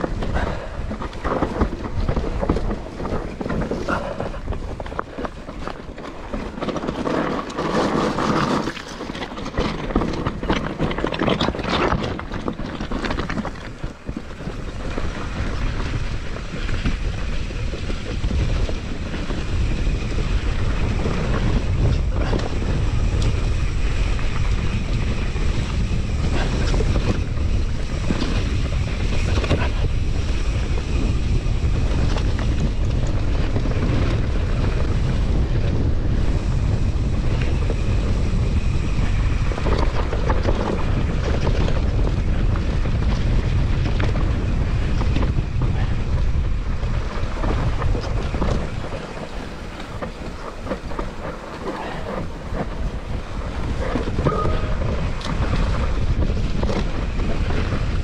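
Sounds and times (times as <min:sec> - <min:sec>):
bike knocks and rattles: 0:00.0 - 0:58.0
wind buffeting microphone: 0:00.0 - 0:58.0.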